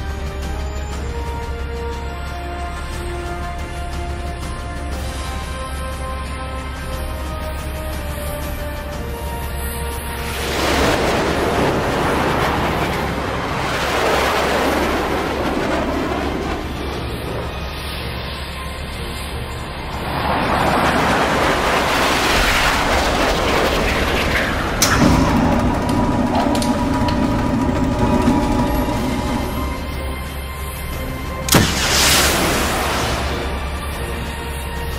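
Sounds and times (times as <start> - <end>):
fighter jet engine roar: 0.0 - 34.9
sharp crack: 21.1 - 29.8, 31.5 - 33.9
steady droning hum: 22.6 - 33.9.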